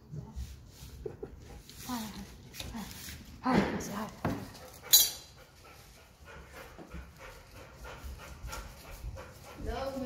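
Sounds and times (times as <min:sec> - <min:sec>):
dog panting: 0:04.4 - 0:10.0.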